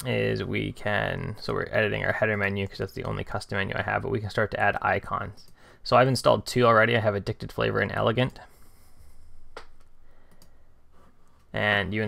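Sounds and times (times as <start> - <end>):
computer mouse click: 9.6 - 10.6.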